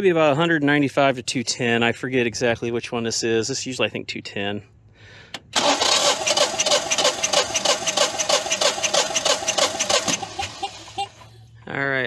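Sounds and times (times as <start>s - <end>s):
engine cranking without firing: 5.3s - 11.1s.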